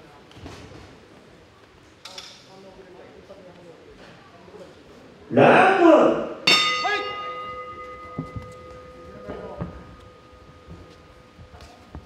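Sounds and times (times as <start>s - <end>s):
bell ringing: 6.5s - 11.3s.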